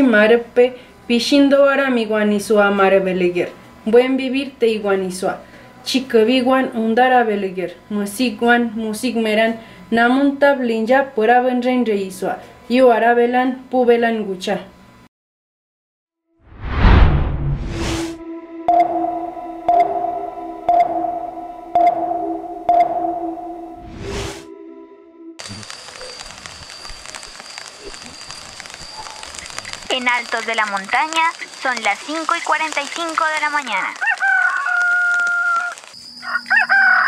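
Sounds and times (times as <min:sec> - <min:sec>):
steady electronic hum: 0:18.1 - 0:32.5
sonar ping: 0:18.2 - 0:23.9
rooster crowing: 0:33.9 - 0:37.0.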